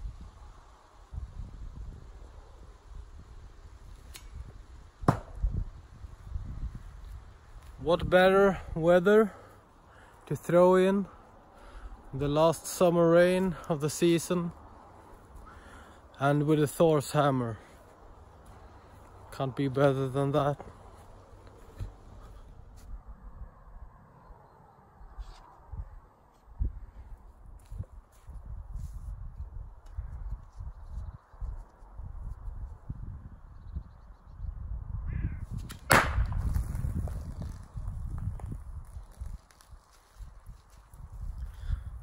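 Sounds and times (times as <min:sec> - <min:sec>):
hammer thunk into wood: 0:05.0 - 0:05.4.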